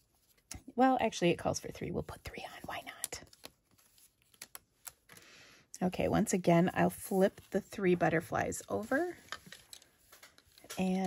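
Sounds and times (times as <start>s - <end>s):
paper rustle: 2.6s - 5.2s, 6.8s - 11.0s.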